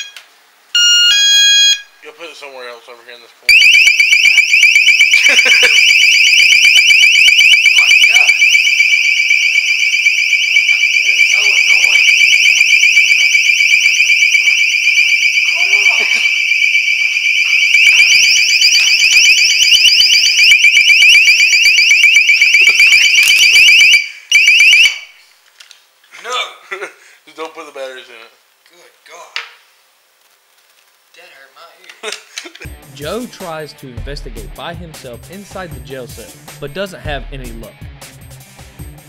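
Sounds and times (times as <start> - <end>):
high-pitched warbling electronic alarm: 0.8 - 1.9, 3.5 - 25.2.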